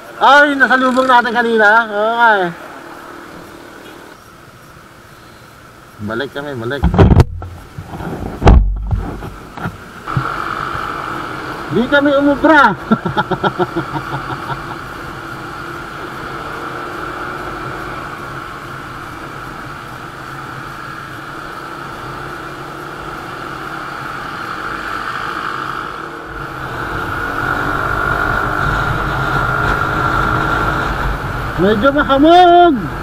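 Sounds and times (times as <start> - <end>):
motorcycle engine cruising: 0.0 - 4.2, 7.0 - 33.0
wind rushing over microphone: 6.8 - 11.1, 26.3 - 33.0.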